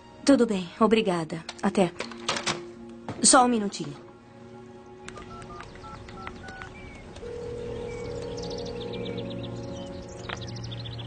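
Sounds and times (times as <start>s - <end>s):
soft background music: 0.0s - 11.0s
birds chirping faintly: 3.3s - 11.0s
phone keypad beeps: 5.2s - 8.8s.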